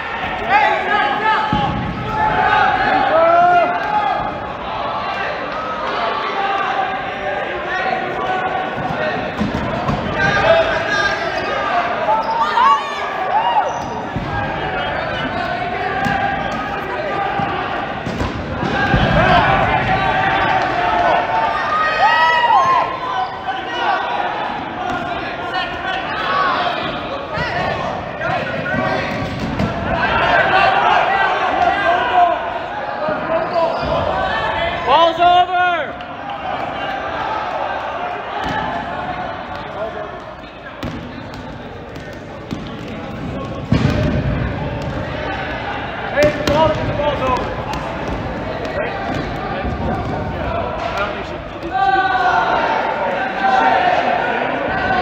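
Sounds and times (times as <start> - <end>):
players shouting in a gym: 0.0 - 55.0
balls bouncing on hard floor: 39.5 - 45.2, 46.2 - 51.7.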